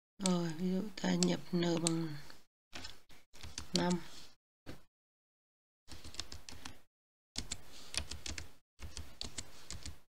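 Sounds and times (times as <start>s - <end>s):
computer keyboard typing: 5.9s - 6.8s, 7.4s - 10.0s.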